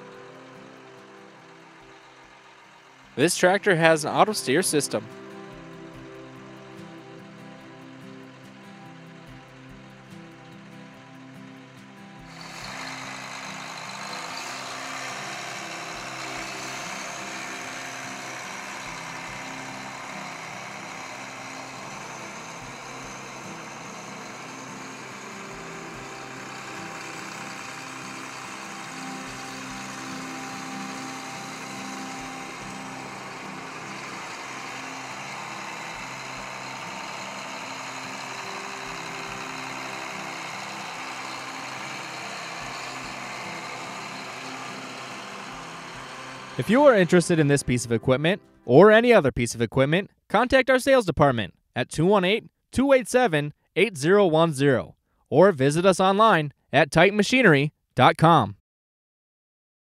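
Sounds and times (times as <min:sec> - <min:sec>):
tractor diesel engine running: 0:00.0 - 0:48.5
soft background music: 0:00.0 - 0:49.1.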